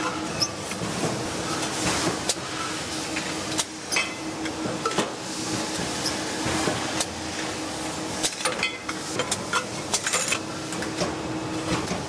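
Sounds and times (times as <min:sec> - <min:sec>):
factory machinery noise: 0:00.0 - 0:12.0.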